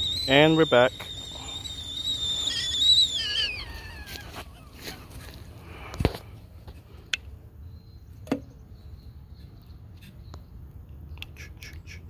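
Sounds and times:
kettle whistling: 0:00.0 - 0:04.4.

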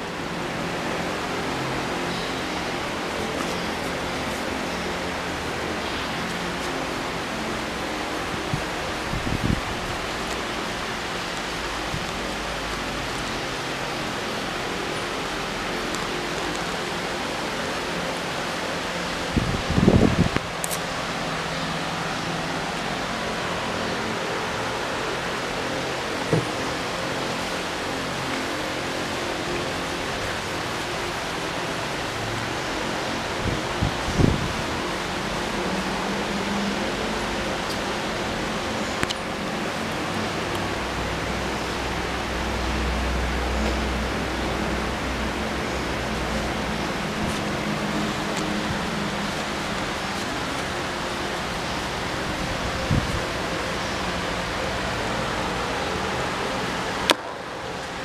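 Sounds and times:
room noise hiss: 0:00.0 - 0:58.0.

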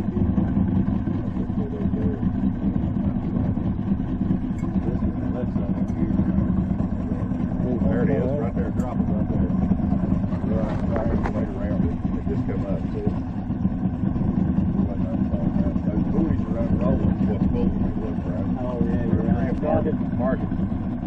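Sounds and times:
outboard motor running: 0:00.0 - 0:21.0.

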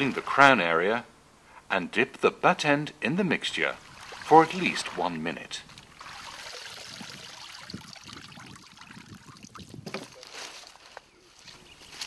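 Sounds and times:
leaves rustling and knocking: 0:09.7 - 0:12.0.

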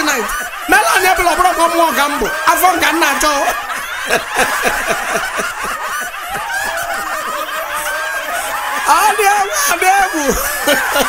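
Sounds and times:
audience laughing: 0:00.0 - 0:11.0.

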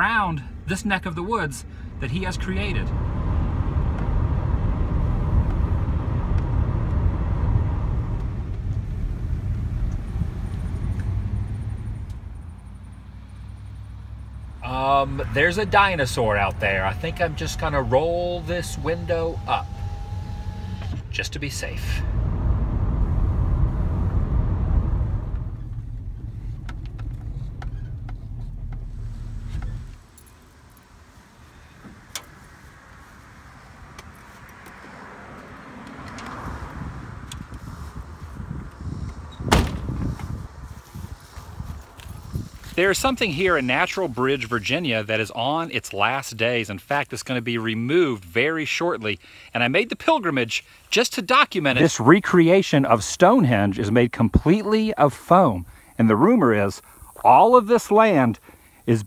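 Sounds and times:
road and engine rumble: 0:00.0 - 0:59.0.

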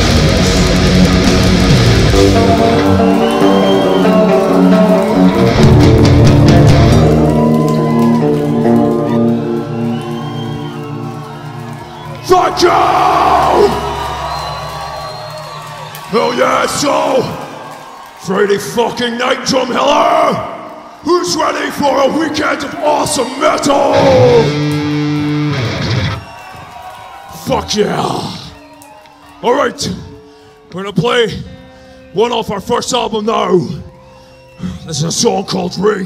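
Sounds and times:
heavy metal guitars and bass chord: 0:00.0 - 0:03.1.

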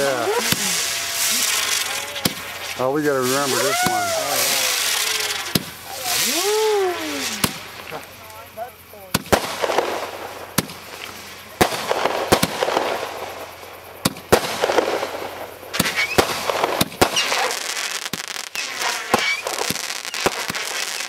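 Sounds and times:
fireworks crackling: 0:00.0 - 0:21.0
fireworks shots: 0:00.0 - 0:21.0.

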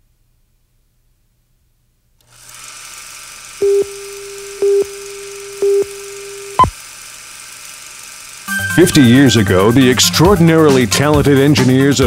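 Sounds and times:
faint hiss and hum: 0:00.0 - 0:02.3
electronic beeps: 0:03.6 - 0:06.7
steady low electronic tone: 0:03.6 - 0:06.7.

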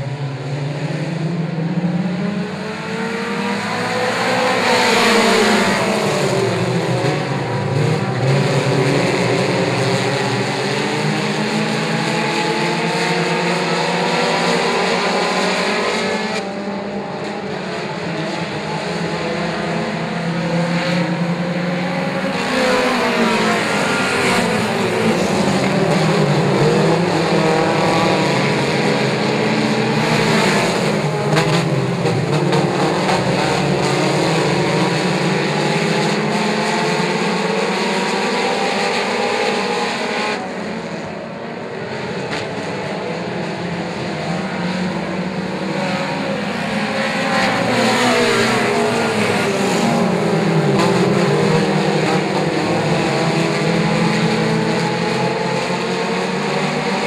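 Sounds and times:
race car engines droning: 0:00.0 - 0:57.0.

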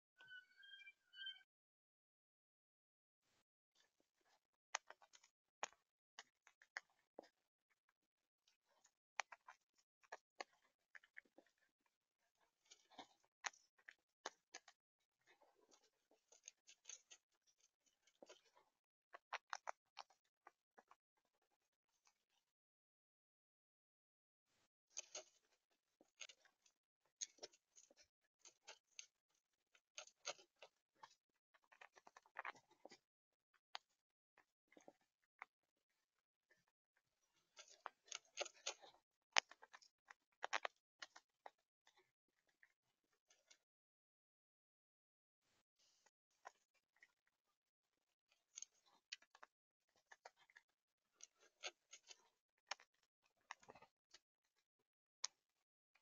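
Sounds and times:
squirrel chewing nuts: 0:03.8 - 0:22.2, 0:24.9 - 0:35.5, 0:36.5 - 0:43.6, 0:48.3 - 0:54.3
squirrel crunching seeds: 0:12.3 - 0:21.0, 0:29.8 - 0:33.0, 0:37.4 - 0:42.1.

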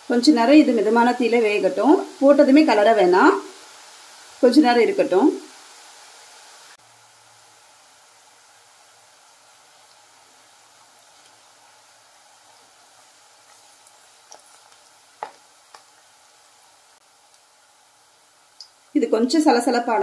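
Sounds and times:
food sizzling in hot oil: 0:00.0 - 0:20.0.

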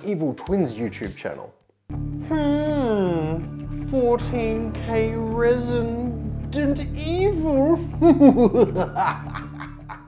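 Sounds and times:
background music: 0:00.1 - 0:10.0
man laughing theatrically: 0:08.0 - 0:10.0.

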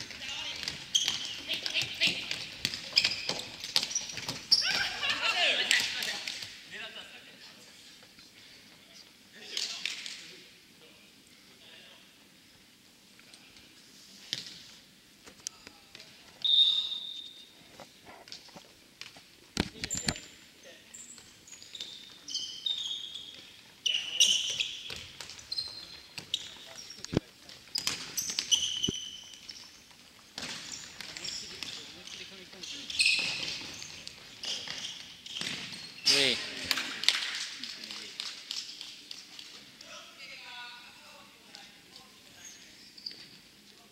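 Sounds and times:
shoe squeaks on wooden floor: 0:00.0 - 0:05.0, 0:21.0 - 0:36.3, 0:42.4 - 0:43.4.

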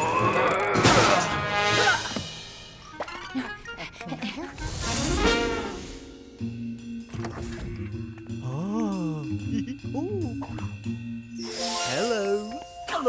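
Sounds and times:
cartoon music: 0:07.7 - 0:13.0.

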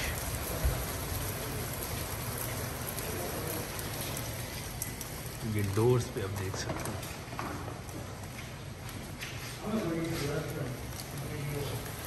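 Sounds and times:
heavy rain on pavement: 0:00.0 - 0:12.0.

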